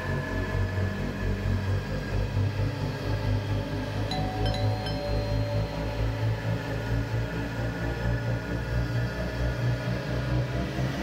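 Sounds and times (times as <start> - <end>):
droning suspense music: 0.0 - 11.0.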